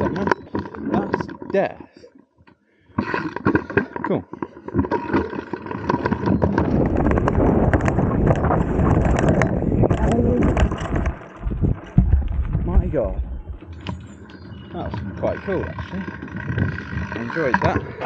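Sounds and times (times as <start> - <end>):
bike tyres on loose dirt: 4.8 - 18.0
wind rumble on microphone: 6.0 - 18.0
bike chain and frame rattling: 15.2 - 18.0.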